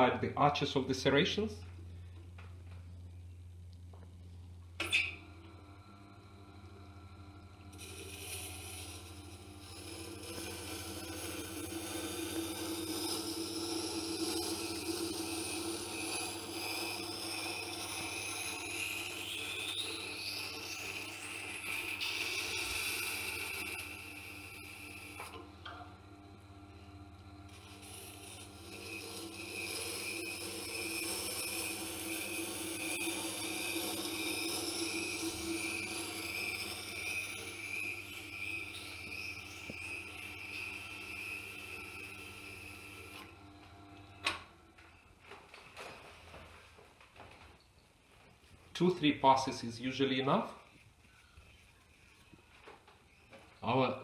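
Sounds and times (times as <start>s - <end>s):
low motor hum: 0.0s - 46.6s
knife scraping on grinding stone: 27.5s - 43.4s.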